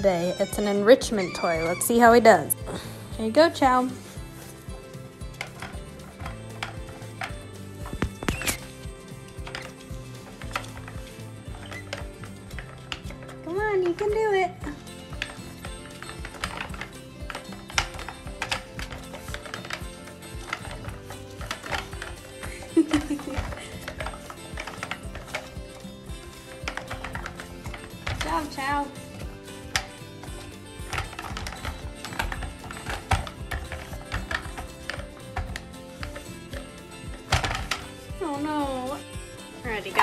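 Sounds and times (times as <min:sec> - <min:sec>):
background music: 0:00.0 - 0:40.0
plastic canisters clicking and knocking: 0:00.0 - 0:40.0.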